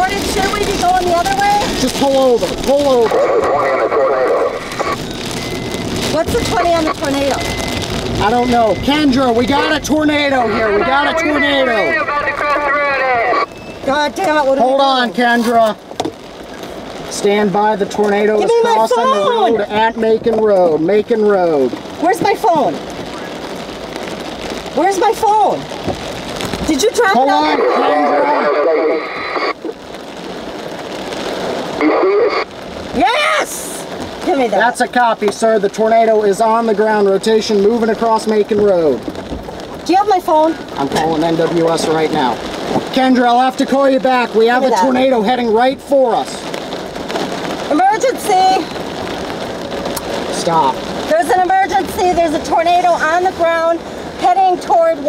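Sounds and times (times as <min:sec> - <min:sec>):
garbled voice over two-way radio: 0:00.0 - 0:05.0, 0:06.1 - 0:07.6, 0:08.2 - 0:15.4, 0:26.7 - 0:29.8, 0:31.8 - 0:33.5, 0:44.2 - 0:45.7.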